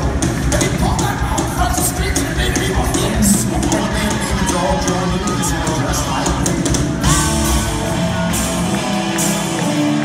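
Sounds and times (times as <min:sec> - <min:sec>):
drum and cymbal hits: 0:00.0 - 0:10.0
live rock band playing: 0:00.0 - 0:10.0.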